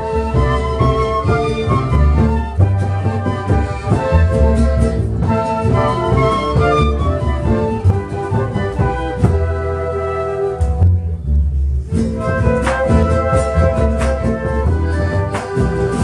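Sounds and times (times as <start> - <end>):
flute ensemble playing: 0.0 - 16.0.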